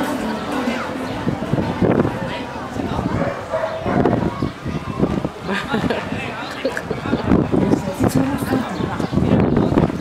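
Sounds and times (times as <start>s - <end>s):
background voices: 0.0s - 4.2s
dog barking: 3.2s - 4.2s.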